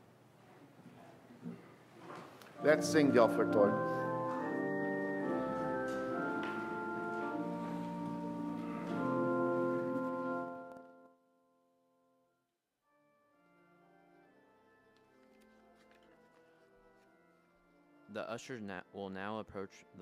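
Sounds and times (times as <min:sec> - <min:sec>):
faint music: 0:00.0 - 0:11.0, 0:13.4 - 0:20.0
church organ chords: 0:02.6 - 0:11.2, 0:12.8 - 0:20.0.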